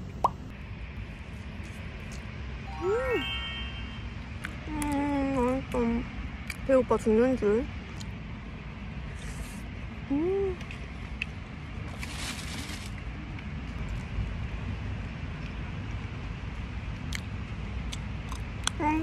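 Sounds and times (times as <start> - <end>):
chewing clicks: 17.0 - 18.8.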